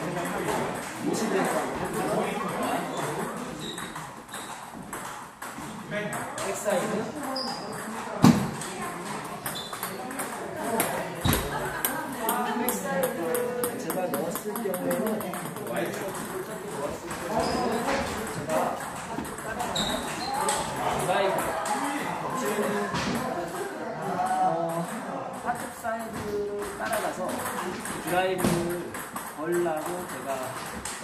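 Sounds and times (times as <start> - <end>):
table tennis balls clicking: 0.0 - 31.0.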